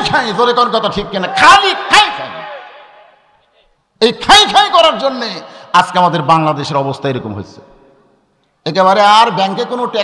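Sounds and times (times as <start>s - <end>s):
man speaking over public address: 0.0s - 2.8s, 3.6s - 7.9s, 8.6s - 10.0s.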